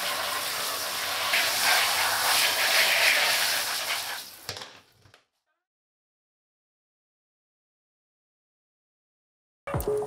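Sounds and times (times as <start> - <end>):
shower head spraying water: 0.0 - 4.3.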